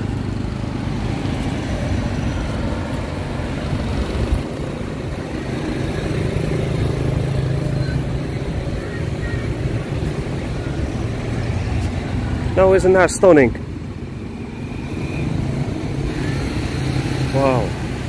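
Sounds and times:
mixed road traffic: 0.0s - 18.0s.

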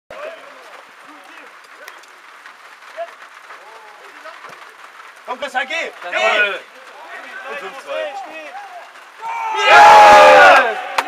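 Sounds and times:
background noise: 0.1s - 11.0s
people shouting on a football pitch: 5.7s - 11.0s.

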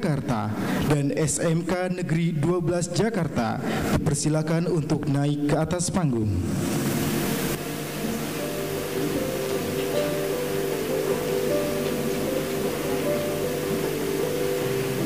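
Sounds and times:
steady hiss: 6.5s - 15.0s
slow held-note music: 7.1s - 15.0s.

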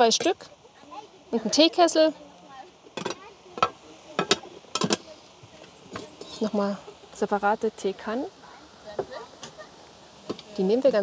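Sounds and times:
metal pots clanking: 2.9s - 5.2s.

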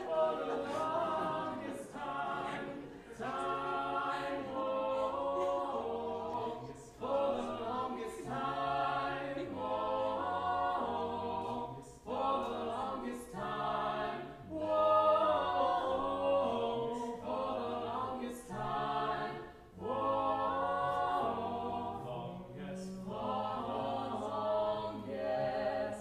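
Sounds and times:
a cappella vocal quartet singing: 0.0s - 26.0s.

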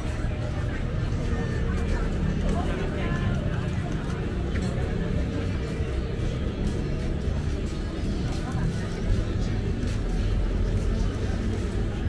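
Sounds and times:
chatter of shoppers: 0.0s - 12.0s
music playing from stalls: 0.0s - 12.0s.

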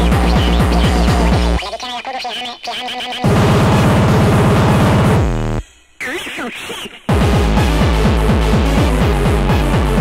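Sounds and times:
fast distorted kick drum: 0.0s - 1.6s, 3.2s - 5.6s, 7.1s - 10.0s
sampled voice with sliding pitch: 0.0s - 3.8s, 6.0s - 7.1s.

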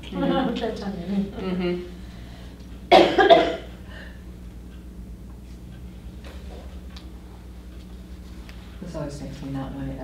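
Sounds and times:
person coughing: 2.9s - 3.8s.

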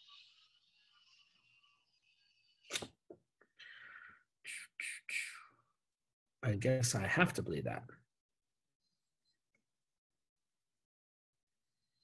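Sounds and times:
sharp breath into microphone: 3.6s - 5.6s.

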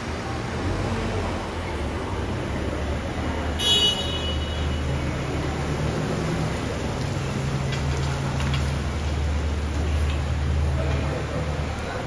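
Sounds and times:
car engines idling: 0.0s - 12.0s.

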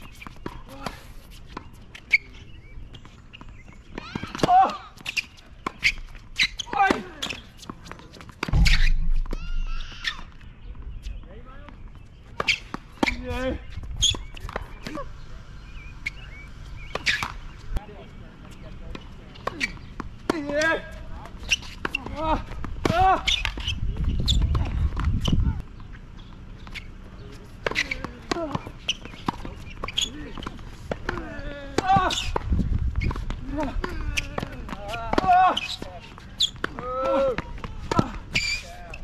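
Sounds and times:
shoe steps on court: 0.0s - 10.9s
rackets hitting tennis balls: 0.0s - 39.0s
wind rumble on microphone: 22.7s - 25.7s, 32.2s - 34.7s.

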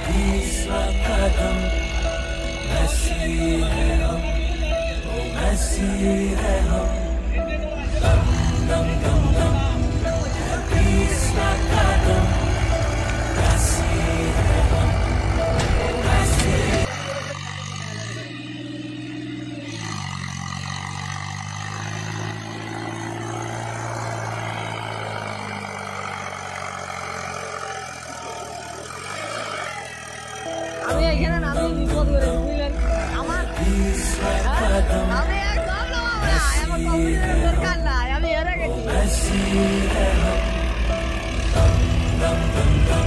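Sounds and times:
tractor diesel engine revving: 0.0s - 43.0s.

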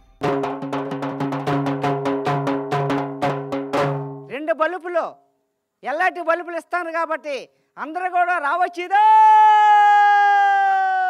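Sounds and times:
man shouting long call: 8.8s - 11.0s.

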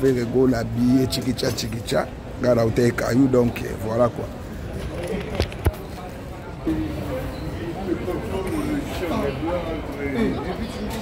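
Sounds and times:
background voices in a shop: 0.0s - 11.0s.

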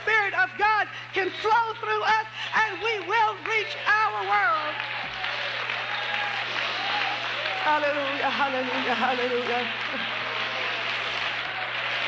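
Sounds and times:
low electrical hum: 0.0s - 12.0s
crowd applauding: 1.5s - 12.0s.

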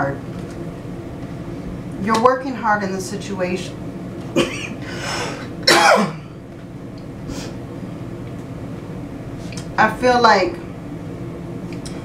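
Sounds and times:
woman coughing: 4.3s - 6.3s.

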